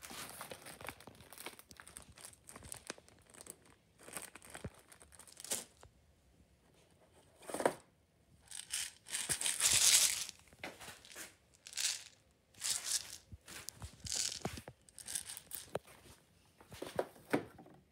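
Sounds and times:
plastic packaging rustling: 0.0 - 5.8, 8.5 - 15.8.

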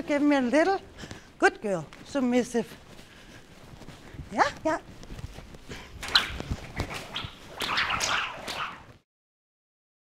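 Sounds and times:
footsteps in sand: 0.0 - 9.0
rope swishing through air: 0.0 - 9.0.

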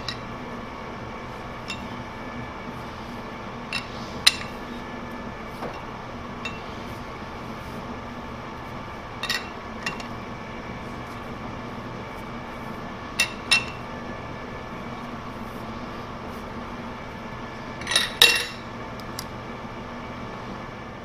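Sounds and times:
steady shop hum: 0.0 - 21.0.

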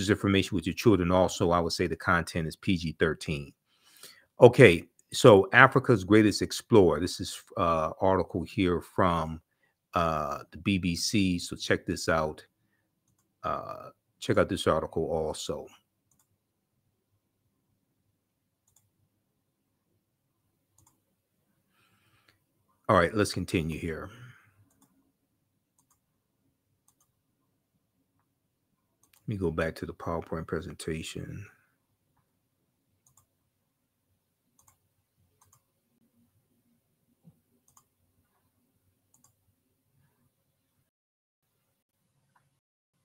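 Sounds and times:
computer mouse clicks: 13.1 - 13.3, 16.1 - 16.4, 18.6 - 18.9, 20.8 - 21.0, 24.6 - 25.0, 25.8 - 26.1, 26.8 - 27.2, 29.0 - 29.3, 33.0 - 33.3, 34.6 - 34.8, 35.4 - 35.7, 37.2 - 37.9, 39.1 - 39.4
faint computer clicks: 26.8 - 27.2, 35.4 - 35.7, 37.2 - 37.9.

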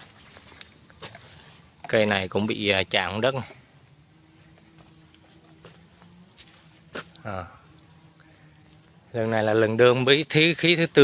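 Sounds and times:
footsteps on dry leaves: 0.0 - 1.7, 4.7 - 7.2
faint steady hum: 0.0 - 11.0.

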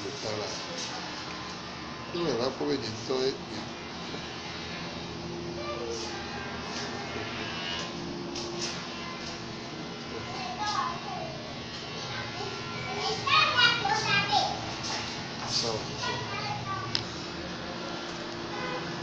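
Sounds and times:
children chattering: 5.4 - 8.0, 8.9 - 17.9
child calling out: 5.6 - 6.1.

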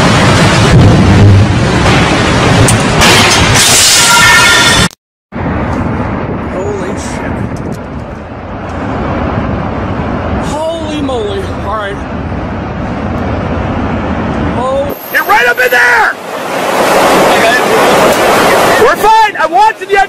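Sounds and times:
strong wind buffeting microphone: 5.3 - 14.9.

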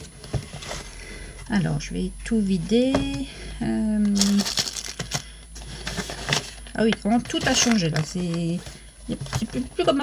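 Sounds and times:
packaging rustling and crinkling: 4.0 - 10.0.

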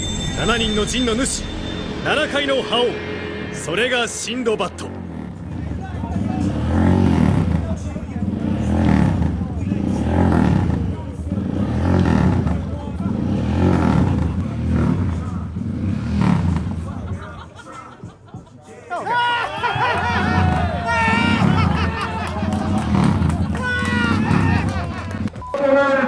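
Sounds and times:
crowd voices: 0.0 - 26.0
motorcycle engine revving: 4.6 - 17.4, 20.1 - 25.4.

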